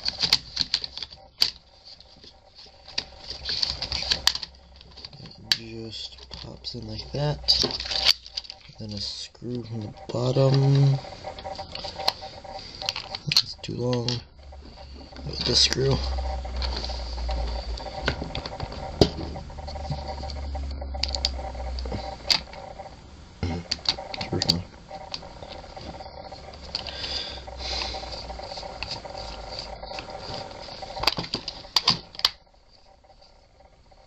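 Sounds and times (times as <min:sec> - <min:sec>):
faint hum: 0:00.0 - 0:34.0.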